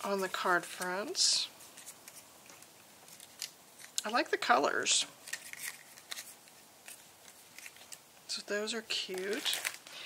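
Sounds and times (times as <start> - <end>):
soft paper rustles: 0.0 - 4.4, 5.2 - 8.0, 9.0 - 10.0.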